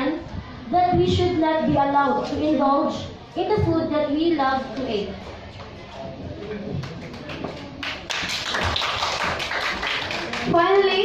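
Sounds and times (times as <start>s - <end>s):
audience clapping: 6.8s - 11.0s.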